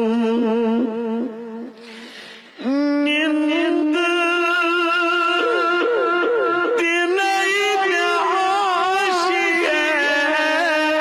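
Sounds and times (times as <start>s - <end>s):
man singing into a microphone: 0.0s - 11.0s
breath drawn: 1.8s - 2.6s.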